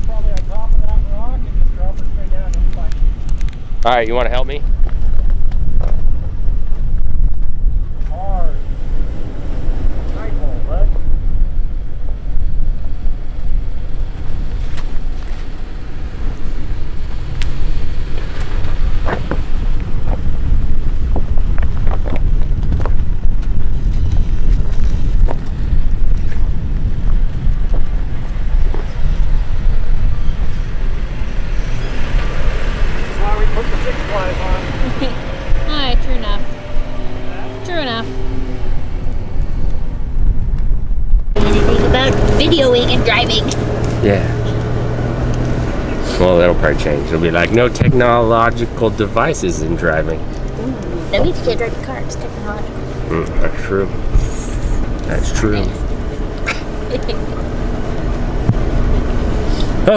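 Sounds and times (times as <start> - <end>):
wind buffeting microphone: 0.0 - 59.9
voices: 32.9 - 38.5, 41.4 - 44.7, 45.7 - 58.1.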